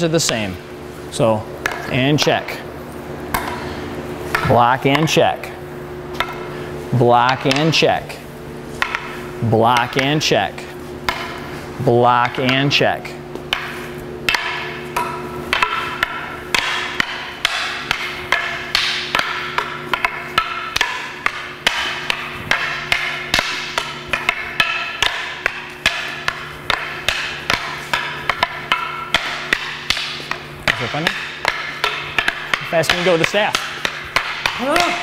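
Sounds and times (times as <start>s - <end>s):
steady low hum: 0.0s - 35.0s
sticks clacking against wooden staff: 8.8s - 10.4s, 12.2s - 35.0s.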